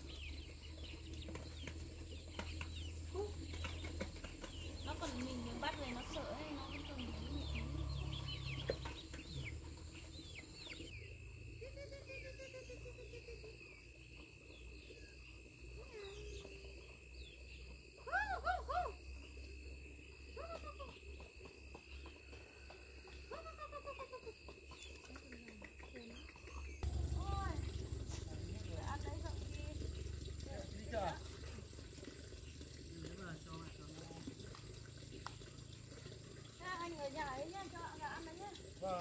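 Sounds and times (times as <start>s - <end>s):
chicks peeping: 0.0s - 10.9s.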